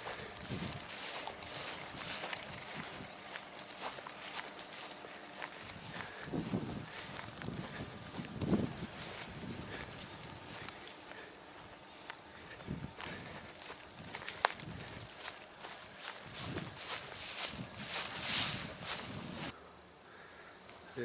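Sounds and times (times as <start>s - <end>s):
footsteps through short grass: 0.0s - 19.6s, 20.6s - 21.0s.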